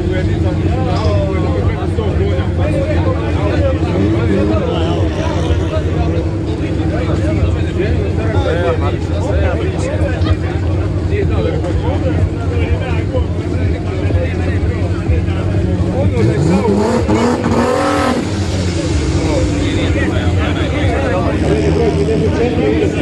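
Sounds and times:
car engine revving: 0.0s - 23.0s
voices and chatter: 0.0s - 23.0s.

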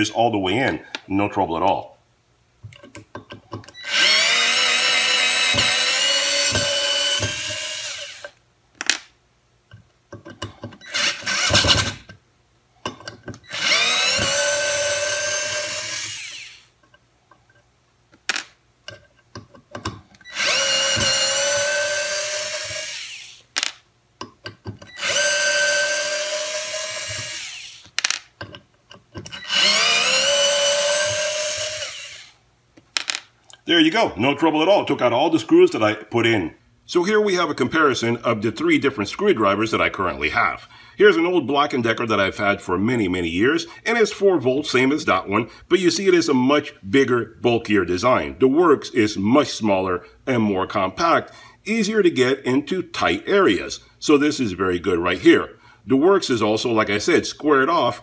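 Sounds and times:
cordless screwdriver whining: 3.7s - 8.4s, 10.8s - 12.1s, 13.4s - 16.7s, 20.2s - 23.4s, 24.9s - 27.9s, 29.3s - 32.4s.

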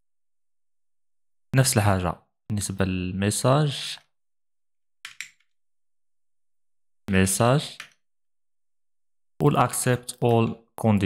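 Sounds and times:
computer keyboard key clicks: 5.0s - 5.5s.

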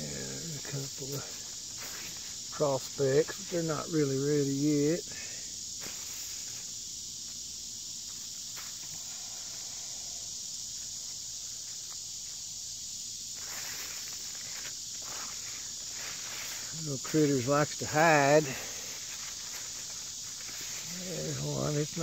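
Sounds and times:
high-pitched insect chorus: 0.0s - 22.0s.

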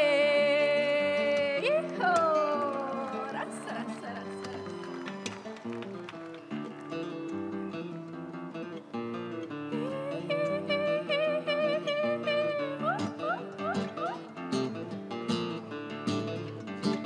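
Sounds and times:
woman singing: 0.0s - 4.2s, 9.7s - 14.3s
acoustic guitar: 0.0s - 17.0s.

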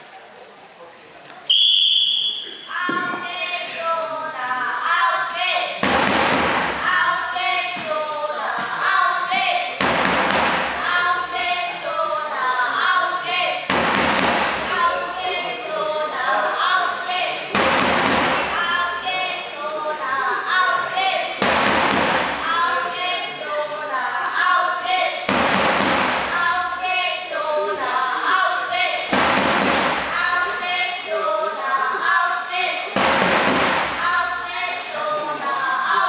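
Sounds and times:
spectators calling and chanting: 1.1s - 36.0s
low rumble ringing in hall: 1.9s - 36.0s
crowd noise burst: 5.3s - 24.0s.

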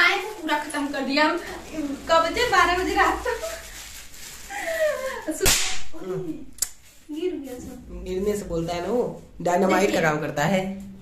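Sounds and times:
snap firecracker crack: 5.4s - 6.0s.

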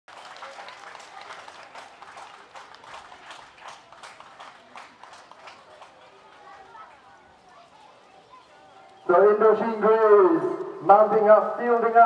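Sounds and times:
crowd clapping: 0.0s - 7.1s.

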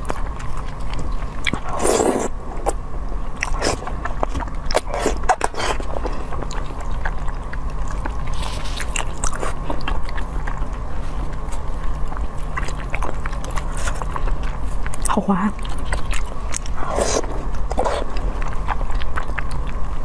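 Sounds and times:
person chewing food: 0.0s - 20.0s
steady low hum: 0.0s - 20.0s.

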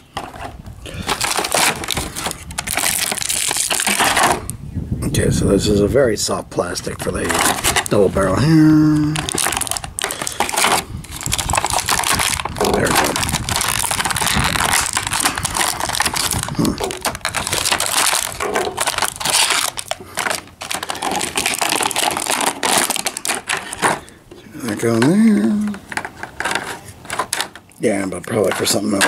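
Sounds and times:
plastic packaging crinkling: 0.0s - 4.4s, 6.9s - 27.7s.

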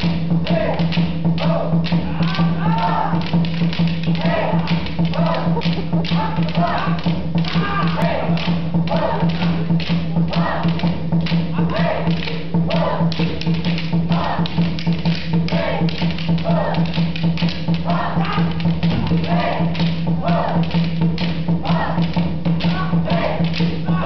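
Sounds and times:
fighting sticks clacking: 0.0s - 24.0s
music: 0.0s - 24.0s
voices: 4.2s - 10.9s.

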